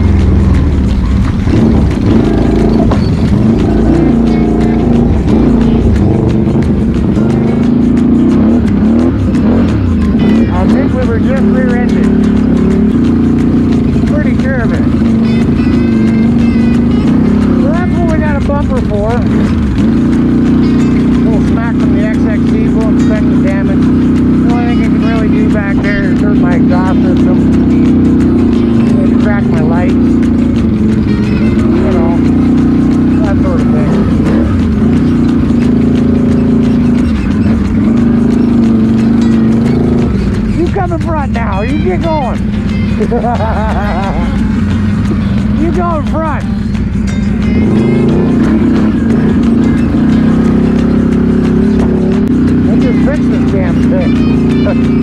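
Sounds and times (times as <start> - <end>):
atv engine droning: 0.0 - 55.0
background music: 0.0 - 55.0.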